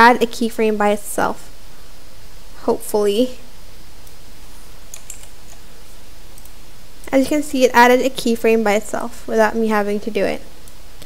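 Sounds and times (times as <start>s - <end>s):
faint computer clicks: 4.9s - 5.6s.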